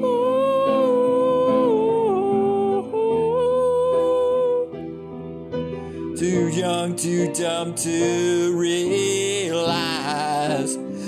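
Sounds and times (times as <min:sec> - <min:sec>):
person singing held ooh: 0:00.0 - 0:04.8, 0:06.2 - 0:11.0
piano chords: 0:00.0 - 0:11.0.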